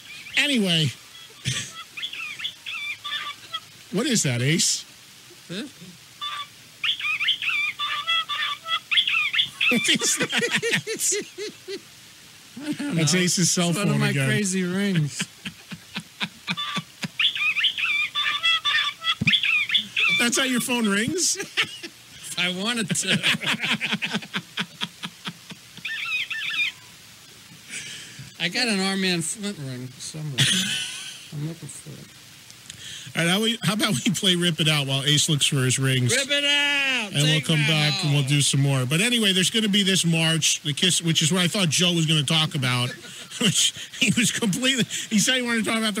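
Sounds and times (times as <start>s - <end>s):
phone ringtone electronic chirps: 6.2s - 10.0s, 16.6s - 20.2s.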